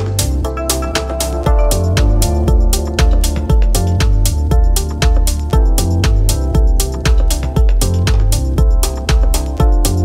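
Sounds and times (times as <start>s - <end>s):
deep house music: 0.0s - 10.0s
held synth chords: 0.0s - 10.0s
kick drum and bass: 0.0s - 10.0s
ticking hi-hats: 0.0s - 10.0s.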